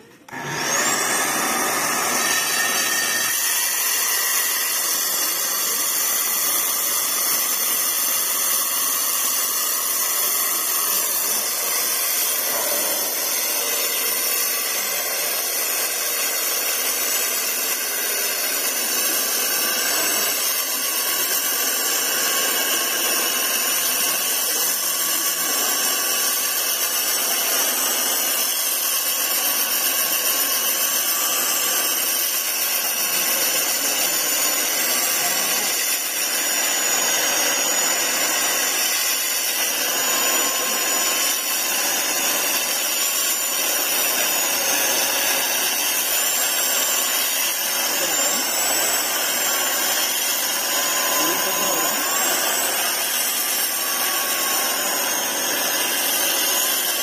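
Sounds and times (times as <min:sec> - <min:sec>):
core drill grinding into concrete: 0:00.0 - 0:57.0.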